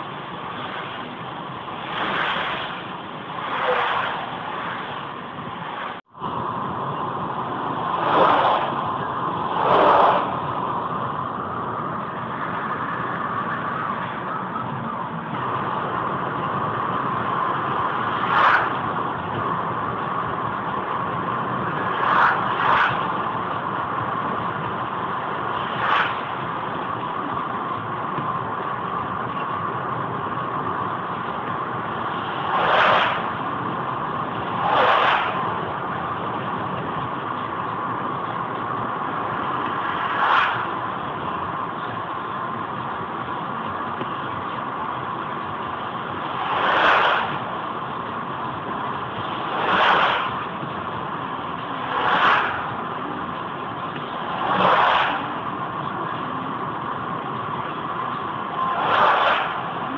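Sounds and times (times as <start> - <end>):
car engine and tyre noise: 0.0 - 59.9
passing vehicles whooshing: 0.0 - 59.9.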